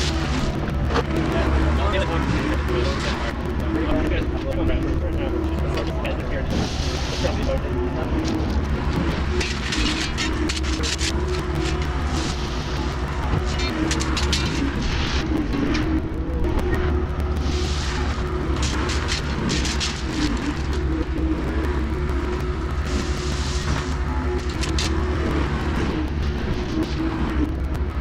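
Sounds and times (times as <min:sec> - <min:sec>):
diesel engine running: 0:00.0 - 0:28.0
tracks and bucket scraping gravel: 0:17.2 - 0:21.8.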